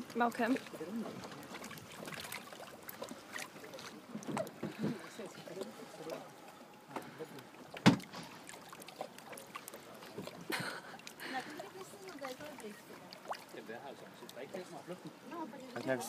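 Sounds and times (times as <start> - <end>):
water lapping and splashing: 0.0 - 16.0.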